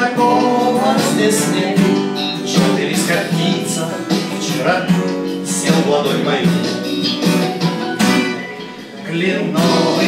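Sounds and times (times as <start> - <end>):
acoustic guitar strums: 0.0 - 10.0.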